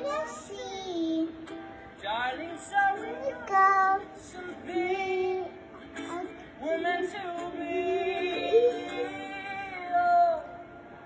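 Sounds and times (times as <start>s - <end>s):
girl singing into a microphone: 0.0s - 1.3s, 3.0s - 4.2s.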